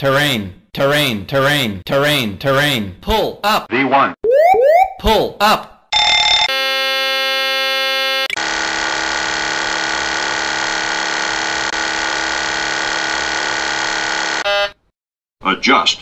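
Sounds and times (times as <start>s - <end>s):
buzzer-like warning tone: 5.9s - 8.4s, 14.2s - 14.8s
harsh steady warning tone: 5.9s - 8.4s.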